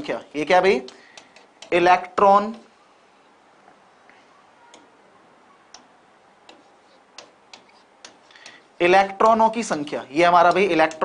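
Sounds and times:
marker pen writing on whiteboard: 0:00.0 - 0:02.3, 0:05.7 - 0:11.0.

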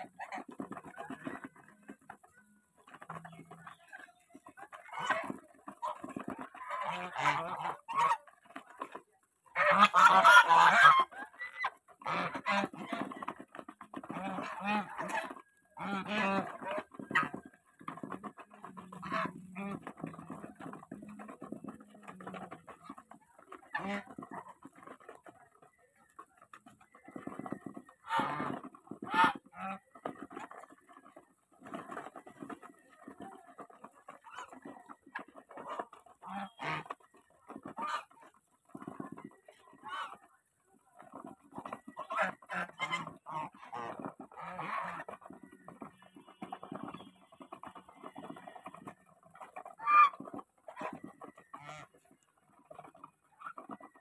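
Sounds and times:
geese bills pecking in grain: 0:00.0 - 0:54.0
geese honking: 0:00.0 - 0:54.0.

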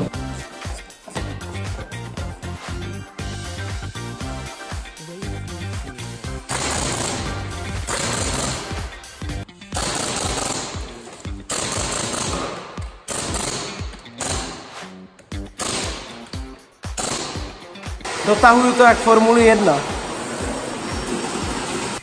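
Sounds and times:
pneumatic impact wrench hammering: 0:06.4 - 0:18.7, 0:19.8 - 0:22.0.

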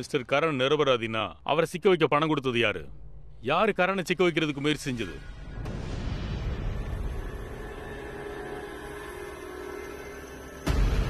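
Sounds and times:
tense drone score: 0:00.0 - 0:11.0.

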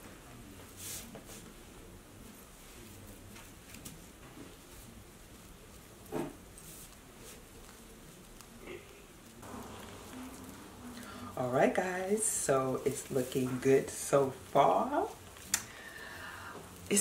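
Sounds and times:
sequinned fabric rustling: 0:00.1 - 0:16.0
low steady hum: 0:01.8 - 0:17.0.

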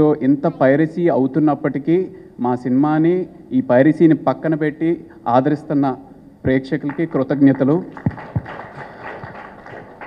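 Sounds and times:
audience applauding: 0:06.8 - 0:10.0.

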